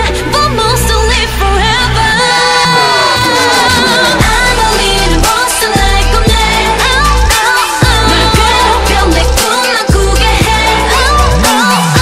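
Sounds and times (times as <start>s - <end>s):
pop song with synth beat: 0.0s - 12.0s
woman singing: 0.0s - 12.0s.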